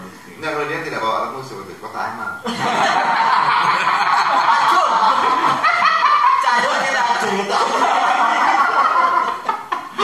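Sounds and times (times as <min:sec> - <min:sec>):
men laughing: 0:02.4 - 0:10.0.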